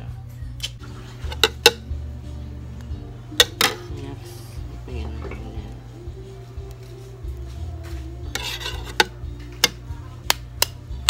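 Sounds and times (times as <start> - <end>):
spoon scraping eggs in bowl: 8.2 - 9.8.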